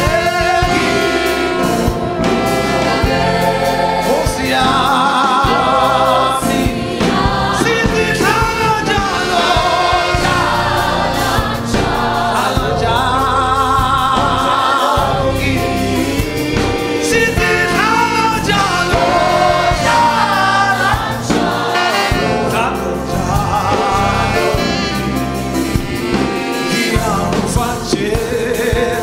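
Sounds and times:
man singing lead: 0:00.0 - 0:25.2, 0:26.0 - 0:29.0
congregation singing gospel song: 0:00.0 - 0:29.0
low bass line: 0:00.0 - 0:29.0.

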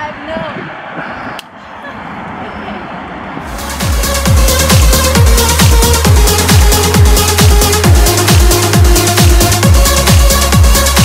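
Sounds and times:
outdoor background noise: 0:00.0 - 0:04.1.

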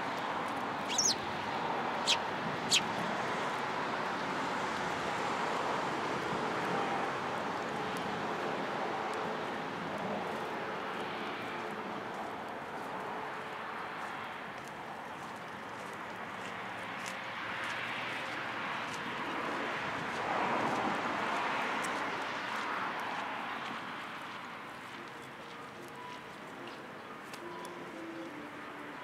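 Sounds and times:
distant engine rush: 0:00.8 - 0:01.3.

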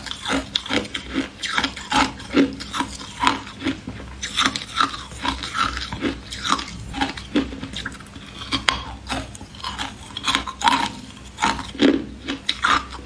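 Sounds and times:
ice being chewed: 0:00.0 - 0:13.0.

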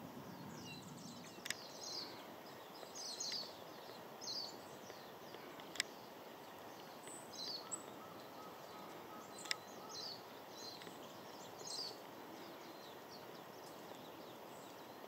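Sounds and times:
faint outdoor background noise: 0:00.0 - 0:15.0
high-pitched songbird calls: 0:00.3 - 0:06.2, 0:06.8 - 0:15.0.

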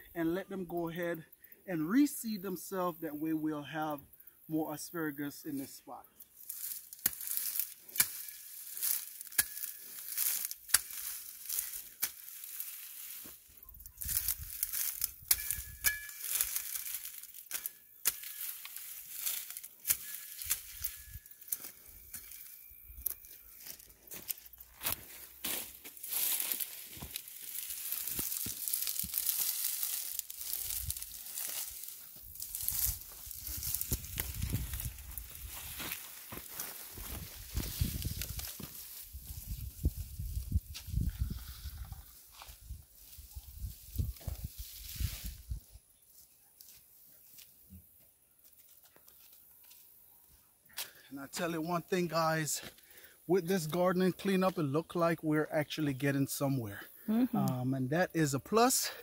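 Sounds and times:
dry grass crackling and tearing: 0:05.5 - 0:47.6.

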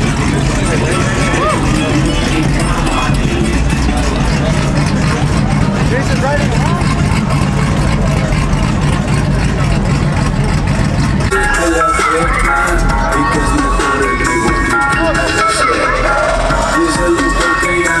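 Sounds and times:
crowd chatter: 0:00.0 - 0:18.0
pickup truck engine running: 0:00.0 - 0:18.0.

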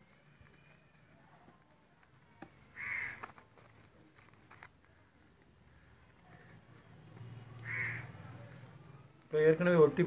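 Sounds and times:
crow cawing: 0:02.8 - 0:03.2, 0:07.6 - 0:08.2.

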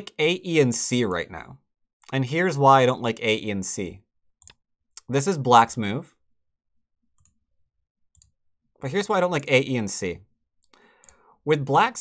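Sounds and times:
computer mouse click: 0:04.4 - 0:04.6, 0:08.1 - 0:08.4.

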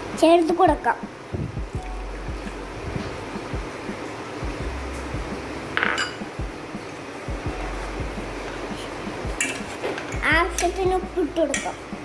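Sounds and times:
spoon clinking against pot: 0:05.8 - 0:06.2.

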